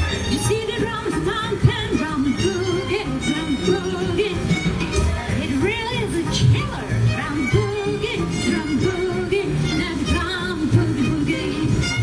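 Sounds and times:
swing big band playing: 0.0 - 12.0
woman singing: 0.2 - 4.8, 5.4 - 12.0.

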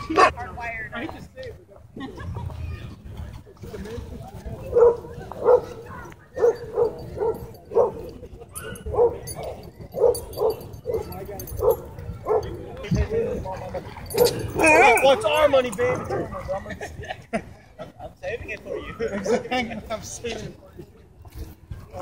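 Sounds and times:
dog barking: 4.7 - 5.8, 6.4 - 9.3, 10.0 - 12.5.

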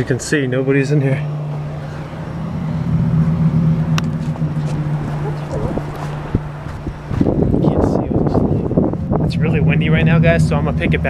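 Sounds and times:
low mechanical hum: 0.0 - 11.0
wind buffeting microphone: 1.2 - 11.0.

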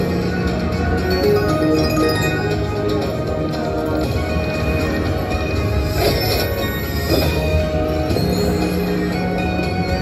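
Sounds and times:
slot machine bonus music: 0.0 - 10.0
bright musical accent: 1.0 - 3.4
slot machine reels spinning: 1.1 - 2.9.

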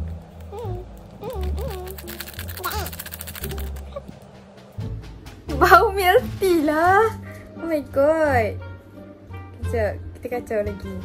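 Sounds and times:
plastic sachet crinkling: 0.0 - 4.0.

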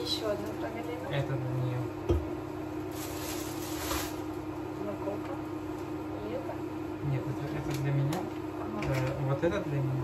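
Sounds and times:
steady low hum: 0.0 - 10.0
packaging rustling: 2.9 - 4.3.

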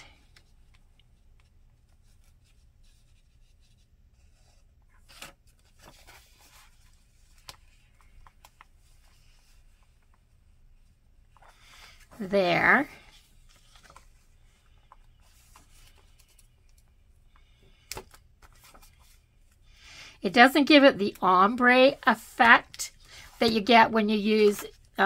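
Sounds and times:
paper rustling: 1.2 - 10.2, 11.3 - 19.2.

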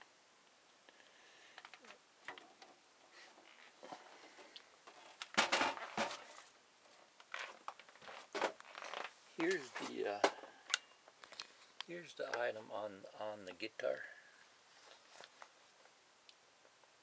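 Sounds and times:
handling rustling: 14.6 - 16.0.

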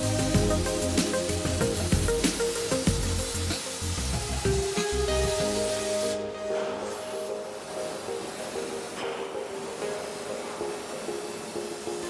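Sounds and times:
background music: 0.0 - 12.0
plasma torch arc hissing: 0.0 - 12.0.

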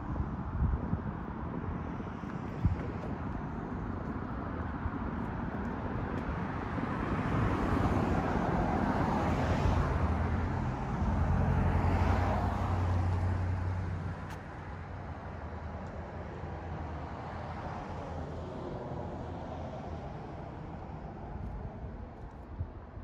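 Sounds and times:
cars passing: 0.1 - 22.9.

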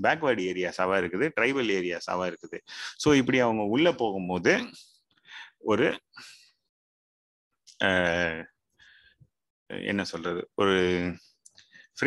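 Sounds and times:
man speaking: 0.0 - 4.8, 7.8 - 8.5, 9.7 - 11.2.

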